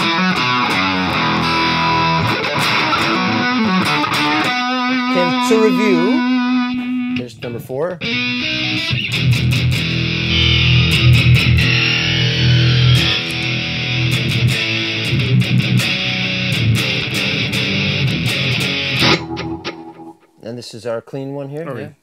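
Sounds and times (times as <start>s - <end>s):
electric guitar chords with effects: 0.0s - 7.3s, 8.0s - 20.4s
falling pitch sweep: 10.1s - 14.2s, 19.0s - 20.3s.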